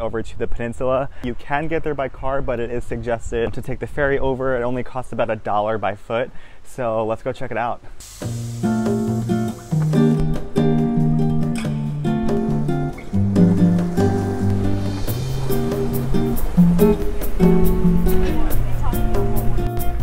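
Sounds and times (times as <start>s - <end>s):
acoustic guitar music: 8.0s - 20.0s
bass line: 8.2s - 20.0s
light ticking beat: 8.2s - 20.0s.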